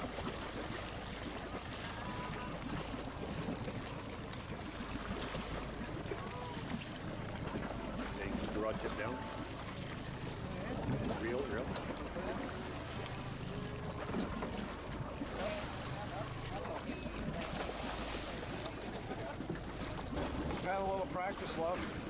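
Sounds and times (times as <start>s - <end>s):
boat engine rumble: 0.0s - 22.0s.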